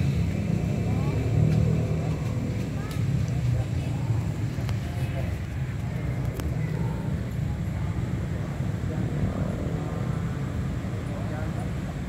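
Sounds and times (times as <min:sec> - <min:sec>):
faint distant voices: 0:00.0 - 0:12.0
low outdoor rumble: 0:00.0 - 0:12.0.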